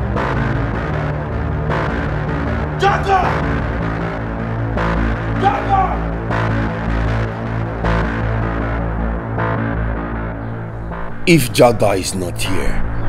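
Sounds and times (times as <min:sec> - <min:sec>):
dark droning film score: 0:00.0 - 0:13.0.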